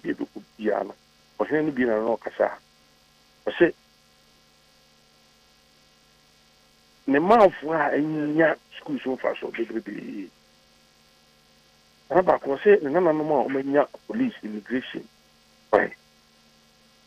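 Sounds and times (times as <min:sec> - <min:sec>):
man speaking over phone line: 0:00.0 - 0:02.6, 0:03.5 - 0:03.7, 0:07.1 - 0:10.3, 0:12.1 - 0:15.1, 0:15.7 - 0:16.0
faint electrical hum: 0:00.0 - 0:17.0.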